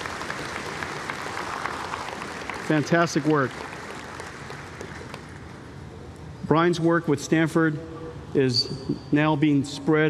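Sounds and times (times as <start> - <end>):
audience applauding: 0.0 - 5.6.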